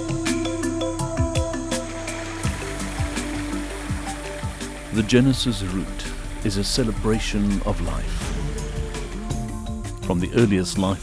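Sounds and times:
background music with low beat: 0.0s - 11.0s
waterfall rushing water: 0.1s - 10.1s.

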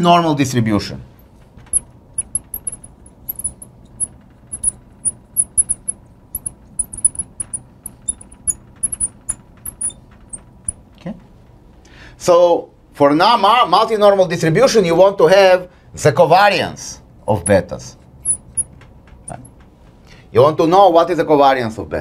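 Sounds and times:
marker squeaking on glass: 1.7s - 10.8s, 18.2s - 18.7s.

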